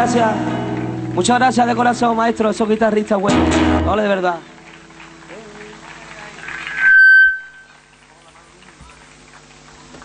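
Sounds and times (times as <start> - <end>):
high whistle-like tone: 6.5 - 7.8.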